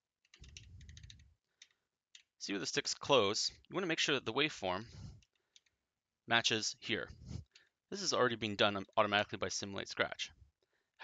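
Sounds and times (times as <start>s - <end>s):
faint keyboard clicks: 0.2s - 2.3s.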